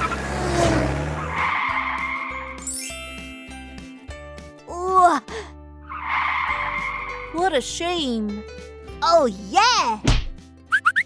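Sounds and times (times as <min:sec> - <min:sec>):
racing car engine: 0:00.0 - 0:02.3
tyres skidding: 0:00.0 - 0:02.7, 0:05.8 - 0:07.6
bright fanfare jingle: 0:02.3 - 0:04.4.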